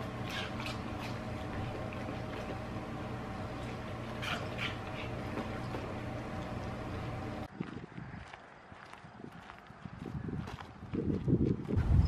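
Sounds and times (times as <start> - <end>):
steady low hum: 0.0 - 7.5
footsteps on gravel: 3.5 - 11.8.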